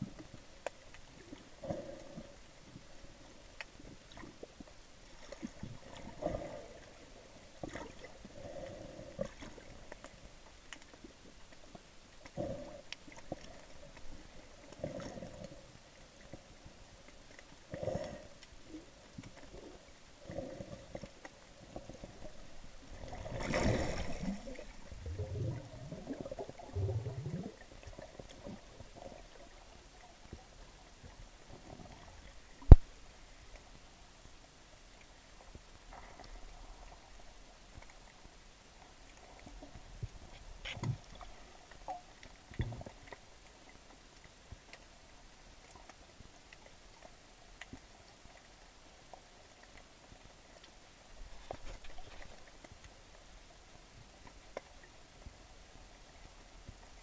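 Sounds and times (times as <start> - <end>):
underwater gurgles and sloshes: 0.0 - 57.0.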